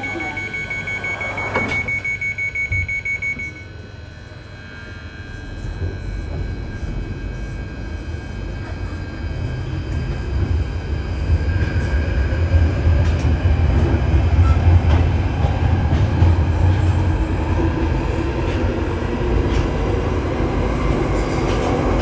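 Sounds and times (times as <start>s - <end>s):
rapid high warning beeps: 0.0s - 3.7s
doors shutting: 1.0s - 3.0s
train rumbling: 2.6s - 22.0s.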